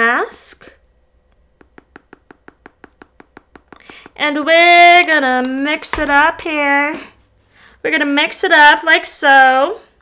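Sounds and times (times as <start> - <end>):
powder tapping into glass bowl: 1.6 - 4.2.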